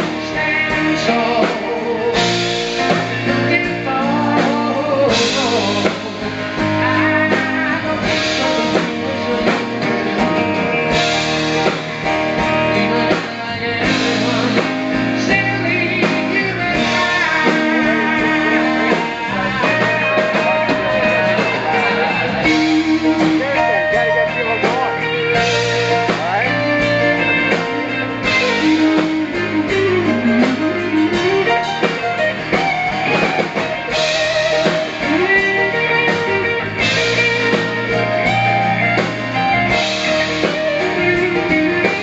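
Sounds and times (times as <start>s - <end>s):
live rock band playing: 0.0s - 42.0s.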